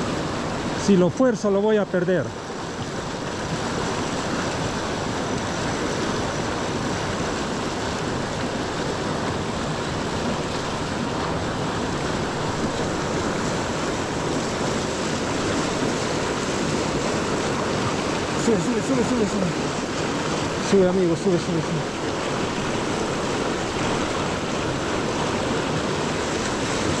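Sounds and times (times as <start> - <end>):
water rushing over rocks: 0.0 - 27.0.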